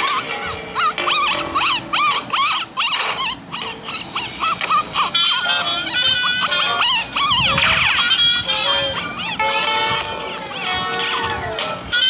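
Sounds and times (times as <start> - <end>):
cartoon puppy yipping: 0.0 - 12.0.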